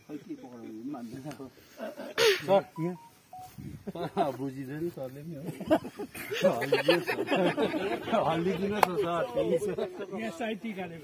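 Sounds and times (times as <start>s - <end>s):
men talking: 0.0s - 11.0s
short single-pitch beeps: 2.5s - 3.6s.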